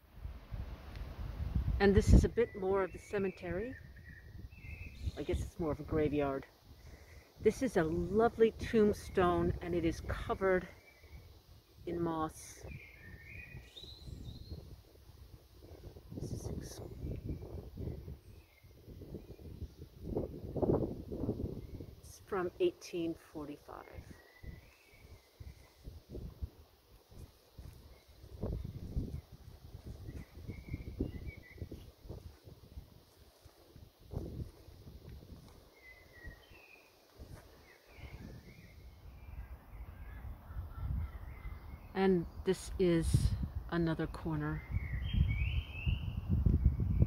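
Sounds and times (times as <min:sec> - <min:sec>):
wind buffeting microphone: 0:00.2 - 0:11.4, 0:12.5 - 0:22.3, 0:23.7 - 0:42.4, 0:43.0 - 0:47.0
birds calling: 0:02.2 - 0:05.5, 0:10.7 - 0:14.7, 0:21.2 - 0:32.2, 0:35.6 - 0:42.4.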